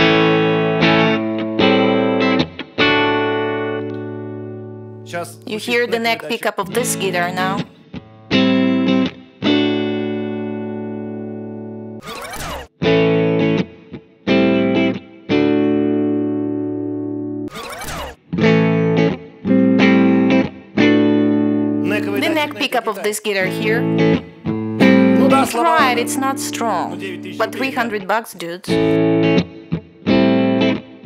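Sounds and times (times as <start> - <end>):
electric guitar chords: 0.0 - 12.0, 12.7 - 17.5, 18.1 - 31.0.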